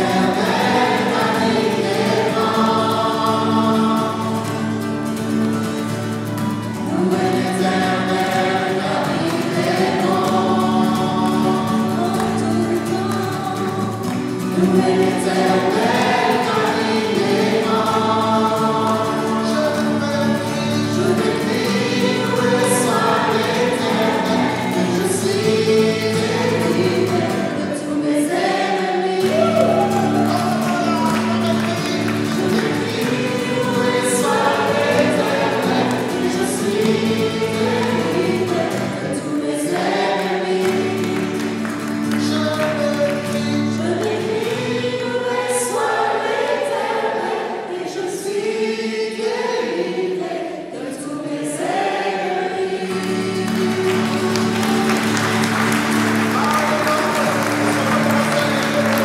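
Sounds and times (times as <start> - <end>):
women and man singing: 0.0 - 4.7, 6.8 - 55.5
acoustic guitar chords: 0.0 - 50.9, 51.6 - 59.0.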